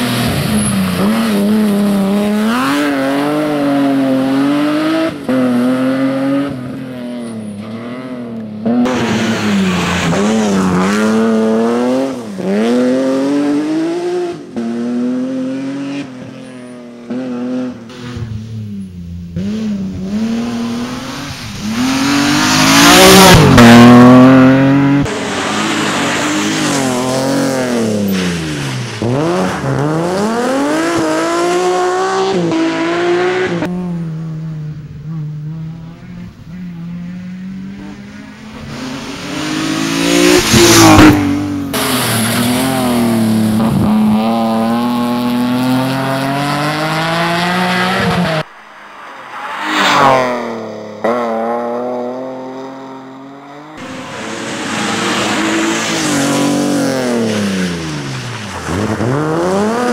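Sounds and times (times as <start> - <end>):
rally cars passing at full throttle: 0.0 - 59.9.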